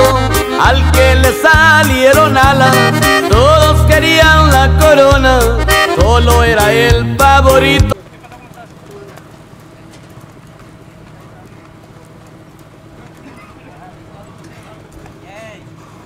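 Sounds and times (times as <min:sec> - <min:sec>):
hoofbeats on dirt: 0:05.1 - 0:16.0
faint voices of people: 0:10.8 - 0:16.0.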